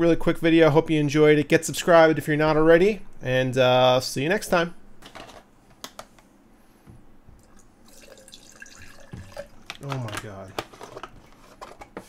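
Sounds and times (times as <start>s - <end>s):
liquid trickling and splashing: 7.4s - 9.7s.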